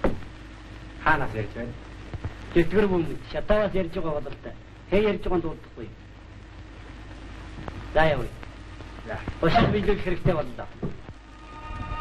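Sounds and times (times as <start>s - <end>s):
film soundtrack hum and hiss: 0.0s - 12.0s
man speaking: 2.6s - 6.0s, 7.9s - 8.4s, 9.1s - 10.8s.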